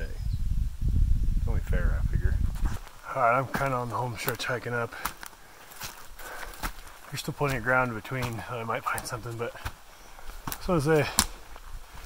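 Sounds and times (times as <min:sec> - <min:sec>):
soft footsteps on forest floor: 0:02.4 - 0:12.0.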